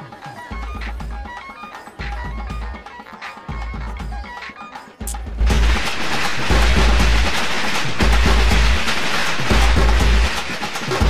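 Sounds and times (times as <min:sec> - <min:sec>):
background music: 0:00.0 - 0:11.0
firecrackers popping: 0:05.1 - 0:11.0.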